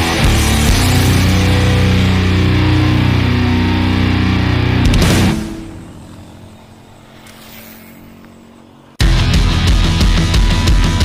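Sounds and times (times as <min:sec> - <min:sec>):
vehicle engine drone: 0:00.0 - 0:11.0.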